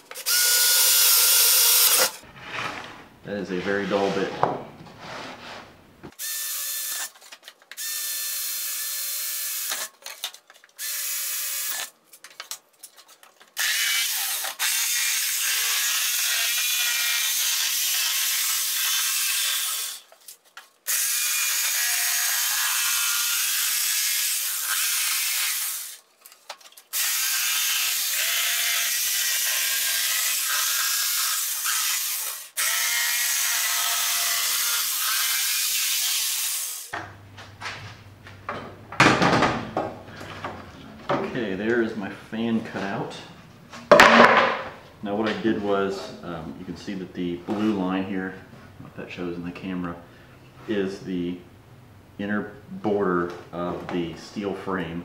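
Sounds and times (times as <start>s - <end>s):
cordless drill boring through wood: 0.2s - 2.2s, 6.2s - 7.1s, 7.8s - 9.9s, 10.8s - 11.9s, 13.6s - 20.0s, 20.9s - 26.0s, 26.9s - 36.9s.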